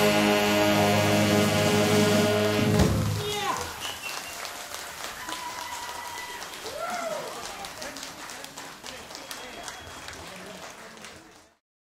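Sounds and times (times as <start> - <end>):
big band final chord: 0.0 - 3.2
audience applauding: 3.2 - 11.6
whoops and cheers: 3.3 - 7.6.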